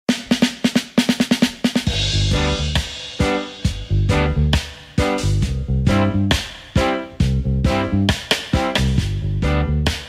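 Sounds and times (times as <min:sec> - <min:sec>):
snare drum fill: 0:00.1 - 0:09.2.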